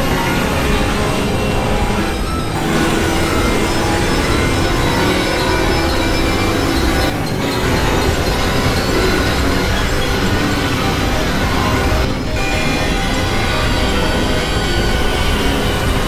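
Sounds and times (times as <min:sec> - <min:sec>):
synthesizer noise and drones: 0:00.0 - 0:16.0.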